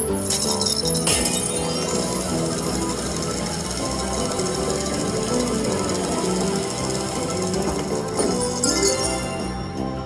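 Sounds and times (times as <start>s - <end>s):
slot machine electronic music: 0.0s - 10.0s.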